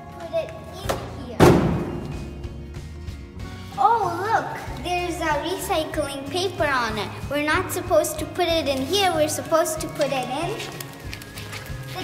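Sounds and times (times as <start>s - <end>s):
box thrown into dumpster thud: 1.4s - 2.2s.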